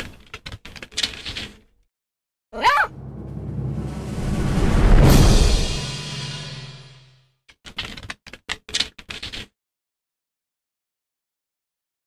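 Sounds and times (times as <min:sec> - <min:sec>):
cartoon dog paws scampering: 0:07.6 - 0:09.5.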